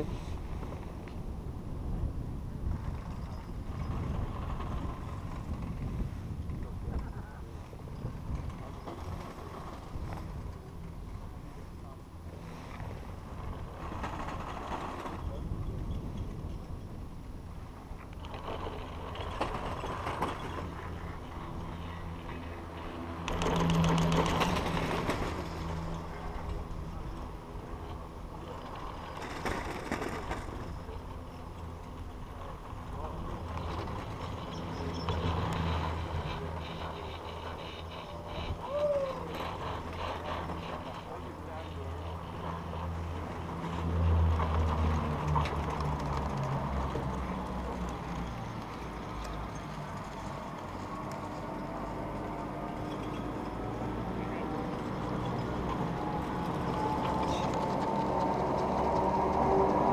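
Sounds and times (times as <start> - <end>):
chairlift rope rumble and hum: 0.0 - 59.9.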